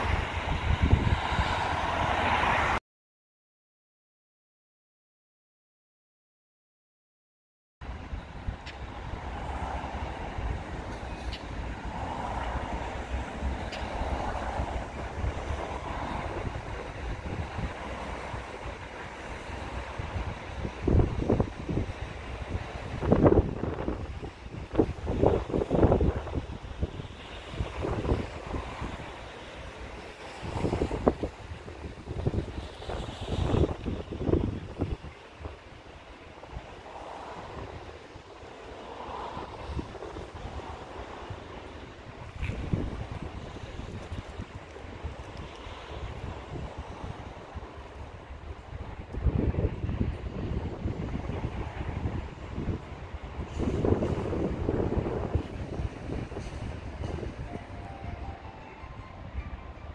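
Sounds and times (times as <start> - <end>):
wind rumbling on microphone: 0.0 - 2.8, 7.8 - 59.9.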